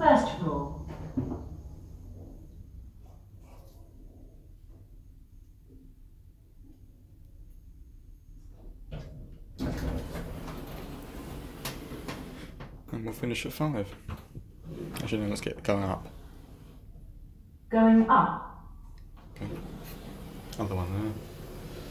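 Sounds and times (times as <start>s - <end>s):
lift doors sliding: 9.6s - 12.6s, 14.6s - 16.8s, 19.2s - 21.9s.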